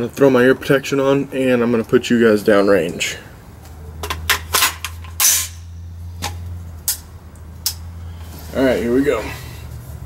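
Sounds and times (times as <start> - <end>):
low steady hum: 0.0 - 10.0
scrape: 8.2 - 8.6.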